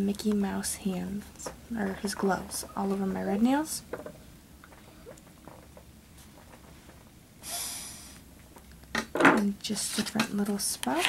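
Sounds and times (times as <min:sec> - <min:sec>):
faint low room hum: 0:00.0 - 0:11.0
nasal sniff: 0:07.4 - 0:08.2.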